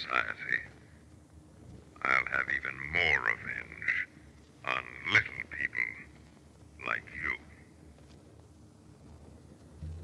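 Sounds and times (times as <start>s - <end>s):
person croaking: 9.8s - 10.0s.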